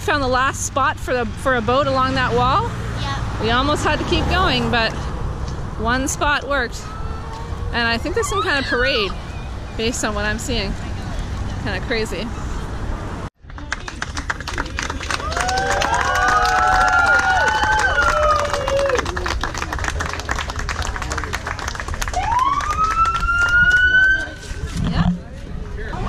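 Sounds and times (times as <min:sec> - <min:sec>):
emergency vehicle sirens wailing: 0:06.7 - 0:09.9, 0:22.0 - 0:24.6.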